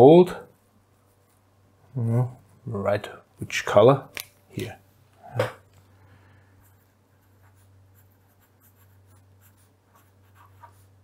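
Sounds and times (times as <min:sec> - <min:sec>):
pen scratching on paper: 0:06.6 - 0:11.0.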